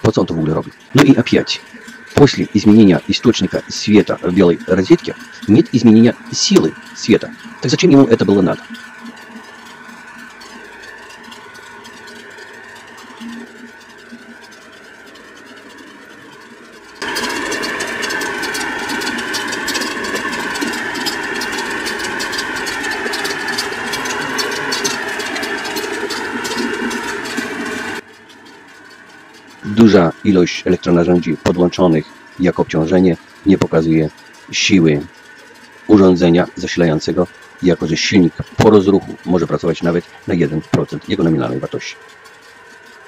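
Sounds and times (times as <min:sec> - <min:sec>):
electric motors humming: 0:00.0 - 0:43.0
loud motor whine: 0:00.0 - 0:43.0.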